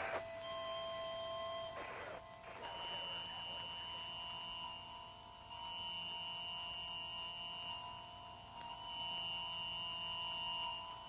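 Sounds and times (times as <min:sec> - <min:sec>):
high electronic whine: 0:00.0 - 0:11.0
low held electronic tones: 0:00.0 - 0:11.0.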